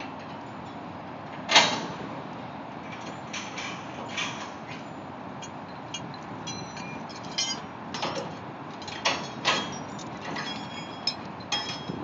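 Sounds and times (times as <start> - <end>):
metallic clinks and rings: 5.4 - 7.7, 9.2 - 12.0.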